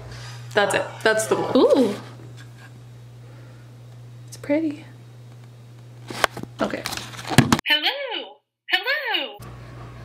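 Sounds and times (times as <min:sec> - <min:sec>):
steady low hum: 0:00.0 - 0:07.4.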